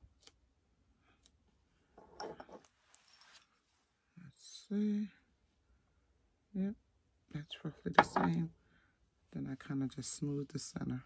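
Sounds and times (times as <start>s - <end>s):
tape crinkling and rustling: 2.6s - 3.8s.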